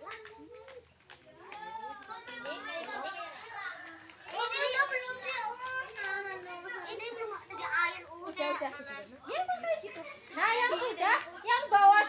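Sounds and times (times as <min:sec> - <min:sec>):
children chattering: 0:00.0 - 0:12.0
people talking: 0:00.0 - 0:12.0.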